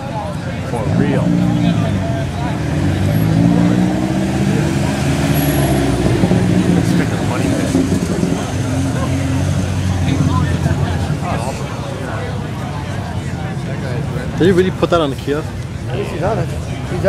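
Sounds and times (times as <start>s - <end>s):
cars driving slowly past: 0.0s - 17.0s.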